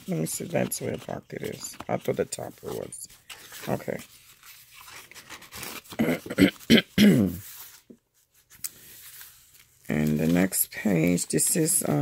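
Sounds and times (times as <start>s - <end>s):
paper rustling and scraping: 0.0s - 6.0s, 7.3s - 12.0s.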